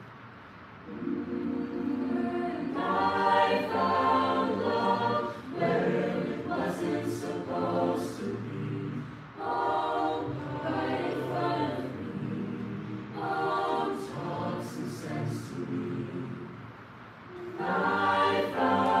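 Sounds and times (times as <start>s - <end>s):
a cappella group singing chords: 0.8s - 19.0s.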